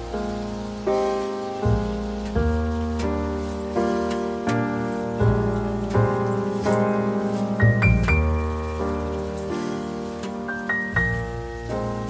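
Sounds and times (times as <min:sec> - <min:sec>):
gentle piano music: 0:00.0 - 0:12.0
soft steady hiss: 0:00.0 - 0:12.0.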